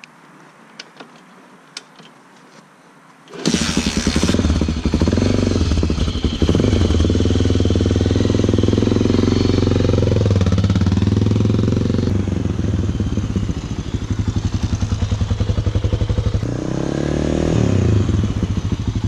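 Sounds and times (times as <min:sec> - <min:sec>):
dirt bike engine revving: 0:03.3 - 0:19.0.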